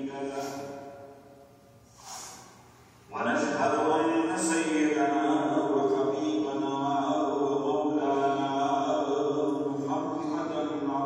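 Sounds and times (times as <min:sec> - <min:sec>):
man chanting: 0:00.0 - 0:01.2, 0:03.1 - 0:11.0.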